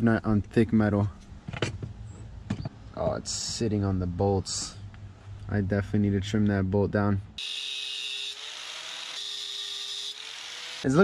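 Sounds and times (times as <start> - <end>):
angle grinder cutting metal: 7.4 - 11.0.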